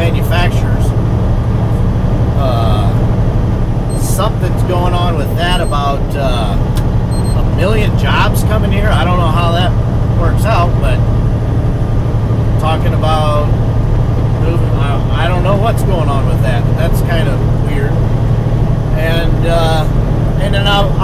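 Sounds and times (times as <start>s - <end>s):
man talking: 0.0s - 0.9s, 2.4s - 3.0s, 3.9s - 6.8s, 7.4s - 11.1s, 12.6s - 13.6s, 14.4s - 18.1s, 18.9s - 21.0s
truck engine drone: 0.0s - 21.0s.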